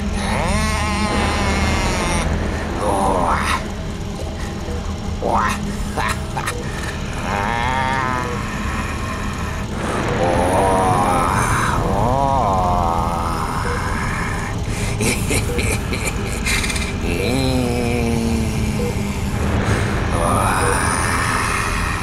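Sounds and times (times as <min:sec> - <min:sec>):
low rumble: 0:00.0 - 0:22.0
person moaning wordlessly: 0:00.0 - 0:22.0.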